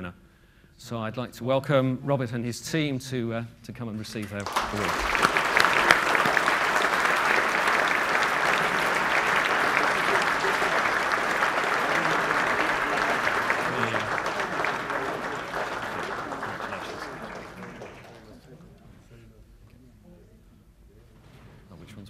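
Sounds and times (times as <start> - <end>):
audience applauding: 4.4 - 18.7.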